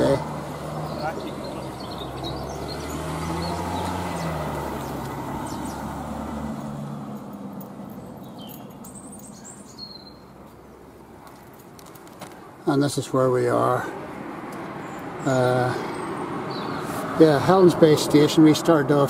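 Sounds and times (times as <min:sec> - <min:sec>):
birds chirping: 0:00.0 - 0:18.8
vehicle engine humming: 0:00.0 - 0:19.0.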